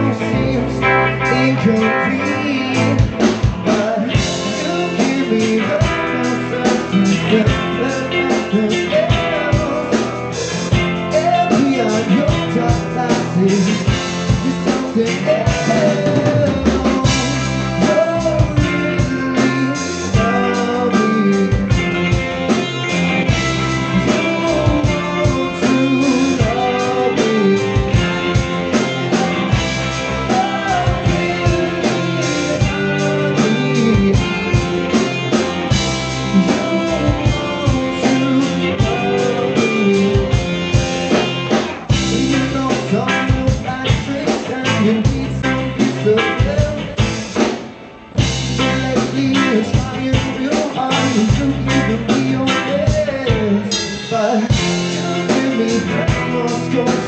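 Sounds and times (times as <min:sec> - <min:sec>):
lead vocal singing: 0:00.0 - 0:47.6, 0:48.2 - 0:57.0
live rock band playing: 0:00.0 - 0:57.0.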